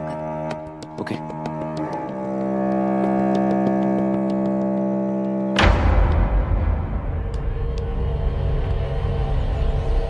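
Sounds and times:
low tense music: 0.0s - 10.0s
deep boom hit: 5.6s - 7.6s.

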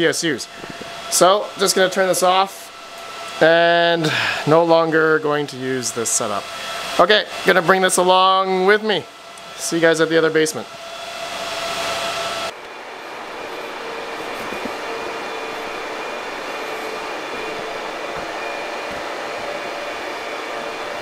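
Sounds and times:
loud hiss: 0.0s - 8.7s, 11.4s - 21.0s
computer cooling fans whirring: 0.0s - 21.0s
faint tonal hum: 12.5s - 21.0s.

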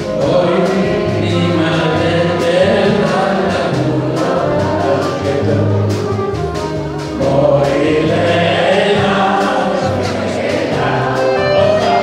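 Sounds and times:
live band playing: 0.0s - 12.0s
voices singing along: 0.0s - 12.0s.

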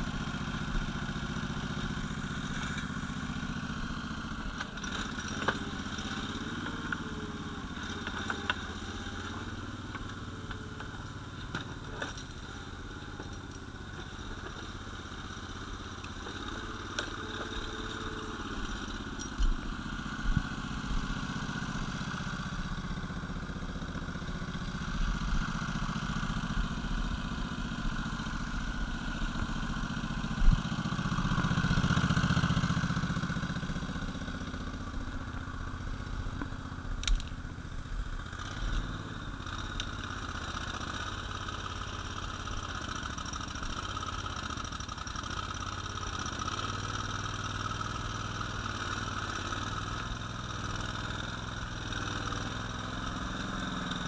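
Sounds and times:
model vehicle engine running: 0.0s - 54.0s.

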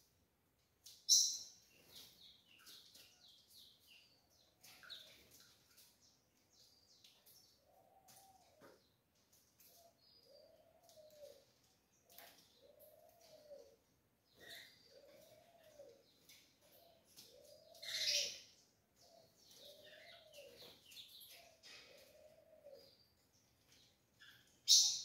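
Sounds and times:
sparrows chirping: 0.9s - 25.0s
low cooing calls: 9.7s - 11.5s, 12.5s - 16.1s, 16.7s - 20.7s, 21.3s - 23.0s.

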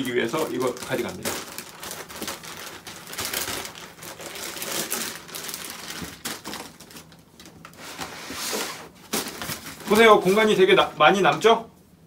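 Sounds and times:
plastic bag crinkling and rustling: 0.0s - 11.2s.

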